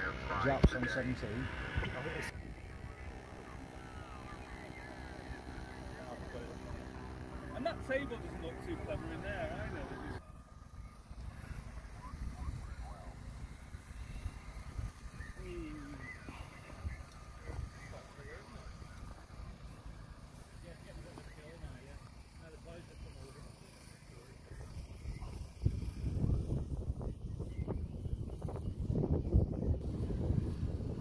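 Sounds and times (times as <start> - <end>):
distant people talking: 0.0 - 28.7
wind on microphone: 24.6 - 31.0.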